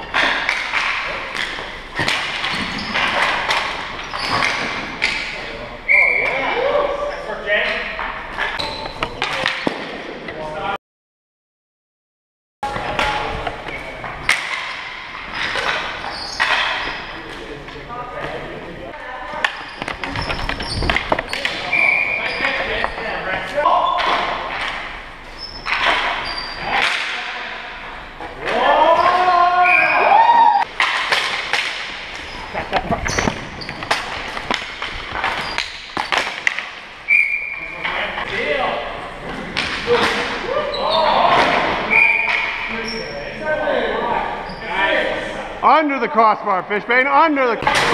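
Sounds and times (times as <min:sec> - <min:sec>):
hockey sticks knocking ball: 0:00.1 - 0:05.4, 0:12.8 - 0:17.5, 0:19.4 - 0:27.5, 0:30.6 - 0:38.4
shoes squeaking on floor: 0:02.0 - 0:05.2, 0:05.9 - 0:06.5, 0:08.5 - 0:09.4, 0:15.2 - 0:17.3, 0:19.4 - 0:23.0, 0:25.3 - 0:26.8, 0:32.2 - 0:34.1, 0:35.0 - 0:36.2, 0:37.1 - 0:38.1, 0:40.7 - 0:43.4, 0:44.4 - 0:44.8
players shouting: 0:28.4 - 0:30.7.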